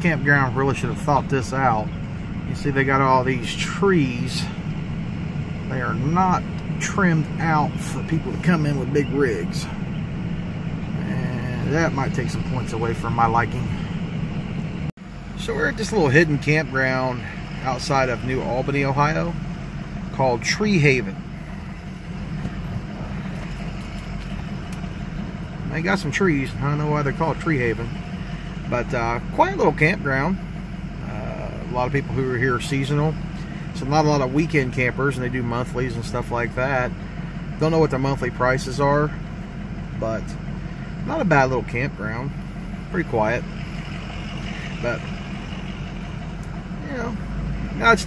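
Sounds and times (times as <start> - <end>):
road noise on gravel: 0.0 - 48.0
truck engine low drone: 0.0 - 48.0
tyres on gravel: 15.3 - 30.3.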